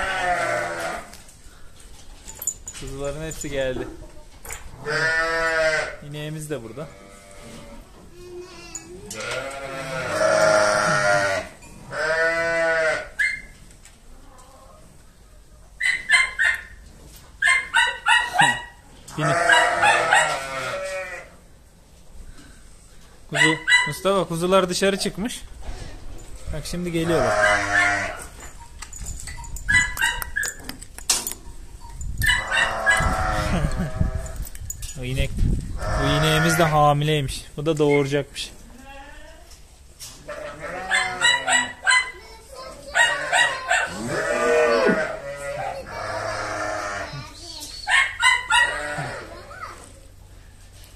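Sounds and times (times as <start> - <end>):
sheep and lambs bleating: 0.0 - 1.2, 4.8 - 6.0, 6.7 - 7.8, 8.5 - 13.2, 19.1 - 21.4, 26.4 - 28.3, 32.4 - 34.3, 35.8 - 36.8, 40.2 - 41.8, 43.0 - 47.2, 48.5 - 49.4
high-pitched animal calls: 17.4 - 21.2, 27.1 - 30.7, 31.8 - 34.4, 40.3 - 42.2, 42.9 - 49.4.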